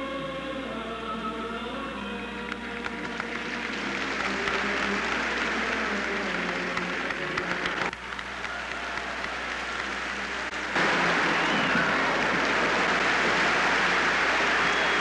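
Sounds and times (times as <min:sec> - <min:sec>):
music: 0:00.0 - 0:15.0
audience applauding: 0:02.5 - 0:15.0.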